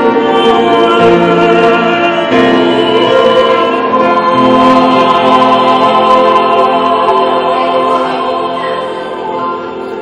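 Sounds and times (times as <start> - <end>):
choir holding a chord: 0.0 - 10.0.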